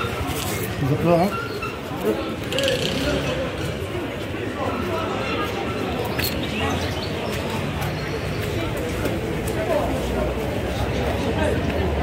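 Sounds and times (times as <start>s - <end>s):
voices of people in street: 0.0s - 12.0s.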